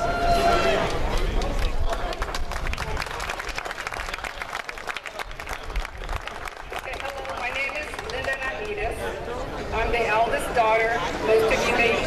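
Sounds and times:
audience clapping: 0:00.7 - 0:09.0.

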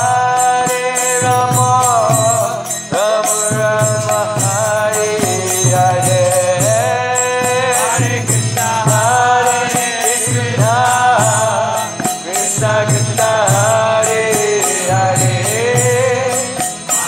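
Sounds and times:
person singing devotional chant: 0:00.0 - 0:17.0
rhythmic percussion strokes: 0:00.0 - 0:17.0.

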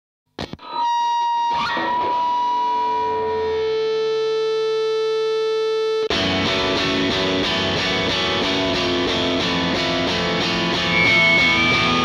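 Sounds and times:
distorted electric guitar: 0:00.3 - 0:12.0.

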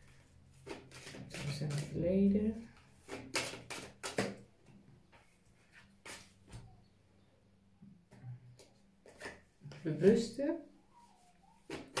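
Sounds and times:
deck of cards being shuffled: 0:00.6 - 0:02.0, 0:03.0 - 0:04.4, 0:05.7 - 0:06.4, 0:08.6 - 0:10.3, 0:11.6 - 0:12.0.

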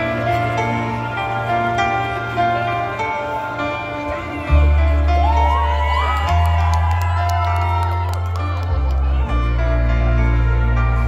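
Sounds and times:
keyboard chords: 0:00.0 - 0:11.0
crowd whooping and cheering: 0:04.5 - 0:09.9.

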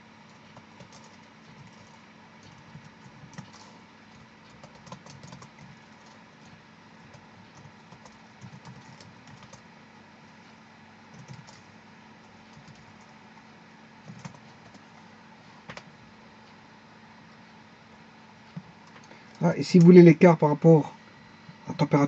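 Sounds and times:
steady low hum: 0:00.0 - 0:22.0
keyboard typing: 0:00.2 - 0:09.7, 0:11.1 - 0:13.4, 0:14.0 - 0:15.0, 0:18.5 - 0:20.0.

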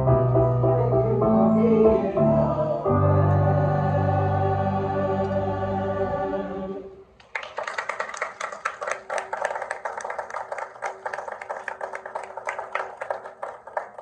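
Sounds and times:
choir holding a chord: 0:00.4 - 0:07.1
audience applause: 0:07.2 - 0:14.0.

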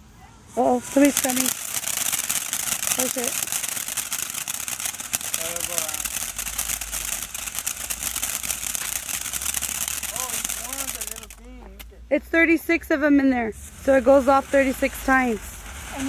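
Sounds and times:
firework fountain hissing and crackling: 0:00.0 - 0:16.0.

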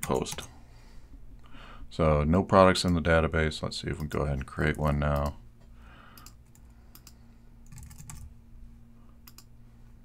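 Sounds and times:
faint keyboard typing: 0:06.1 - 0:08.3, 0:09.2 - 0:09.5.

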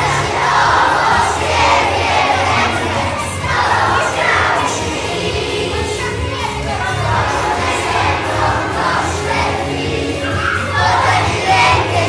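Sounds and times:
children shouting and cheering: 0:00.0 - 0:12.0
song playing: 0:00.0 - 0:12.0.

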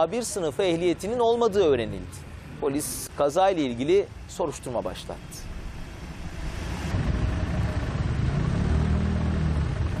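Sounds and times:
vehicle engine rumbling: 0:05.0 - 0:10.0.

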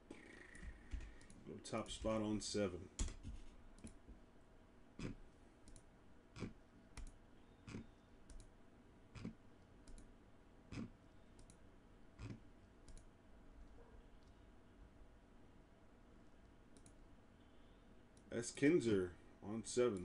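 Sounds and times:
computer mouse clicks: 0:05.0 - 0:08.5, 0:09.2 - 0:10.1, 0:10.7 - 0:11.6, 0:12.2 - 0:13.1, 0:16.7 - 0:17.0.

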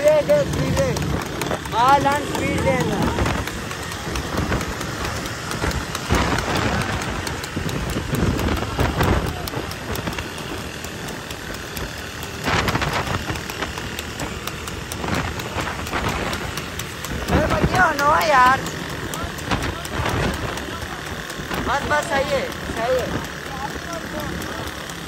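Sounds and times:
wind buffeting microphone: 0:00.0 - 0:23.5
horse-drawn cart moving: 0:00.0 - 0:25.0
motorcycles road noise: 0:00.0 - 0:25.0.

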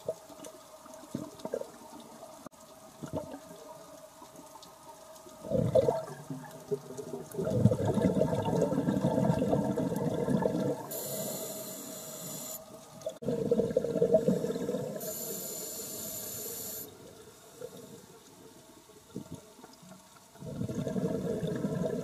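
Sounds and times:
thin inhale hiss: 0:10.9 - 0:12.6, 0:15.0 - 0:18.1.

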